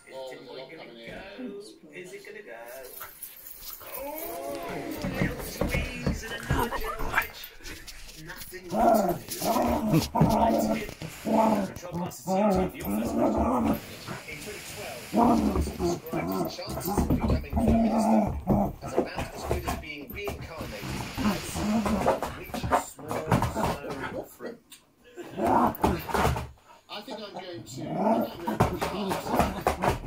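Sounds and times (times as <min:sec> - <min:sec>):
television voices: 0:00.0 - 0:30.0
dog growling in play: 0:03.8 - 0:14.4, 0:15.0 - 0:19.8, 0:20.6 - 0:24.1, 0:25.2 - 0:26.4, 0:27.6 - 0:30.0.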